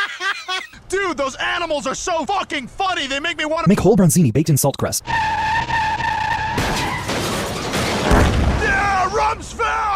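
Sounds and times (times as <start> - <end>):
cartoon tyre squeal: 5.0 - 7.8
low thud: 7.8 - 8.7
man yelling: 8.6 - 9.9.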